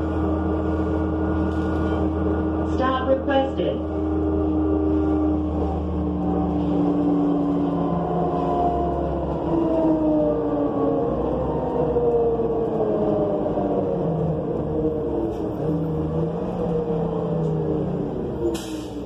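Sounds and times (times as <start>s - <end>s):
bus engine low rumble: 0.0s - 19.0s
drivetrain whine: 0.0s - 19.0s.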